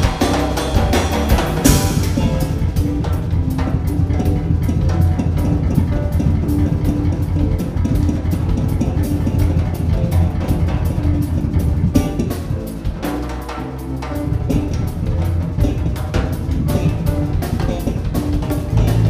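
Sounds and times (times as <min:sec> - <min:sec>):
drum kit: 0:00.0 - 0:19.0
electric guitar: 0:00.0 - 0:19.0
electric keyboard: 0:00.0 - 0:19.0.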